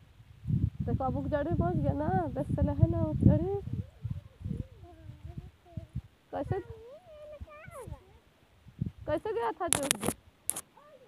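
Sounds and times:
children calling faintly: 3.6s - 8.5s, 10.6s - 11.0s.

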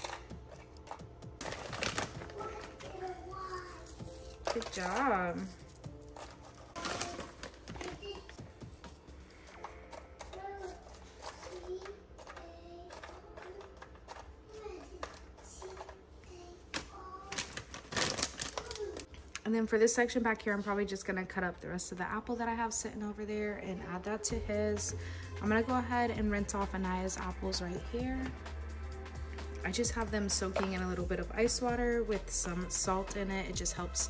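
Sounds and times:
snack bag crinkling: 0.0s - 12.4s, 17.2s - 19.1s
background music: 0.0s - 16.0s, 22.4s - 34.0s
young child's voice: 2.3s - 4.3s, 6.8s - 8.4s, 10.2s - 19.1s.

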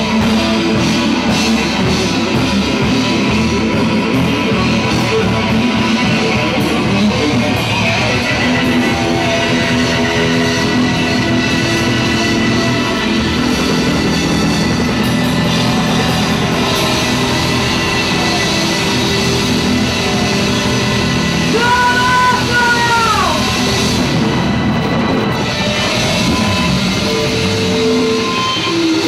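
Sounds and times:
drum kit: 0.0s - 29.0s
electric guitar: 0.0s - 29.0s.

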